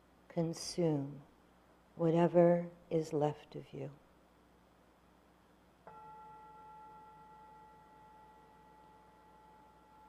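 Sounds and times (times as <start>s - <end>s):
singing bowl ringing: 5.9s - 10.0s.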